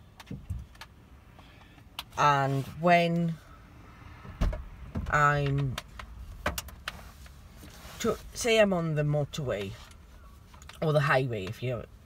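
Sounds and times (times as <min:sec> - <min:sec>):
low steady cabin hum: 0:00.0 - 0:12.0.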